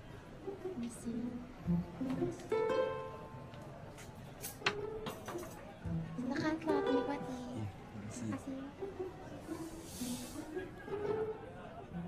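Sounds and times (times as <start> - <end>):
murmur of voices: 0.0 - 12.0
quiet background music: 0.0 - 12.0.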